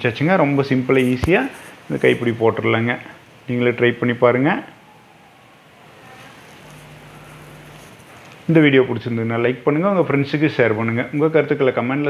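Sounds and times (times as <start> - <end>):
low steady hum: 0.0 - 11.5.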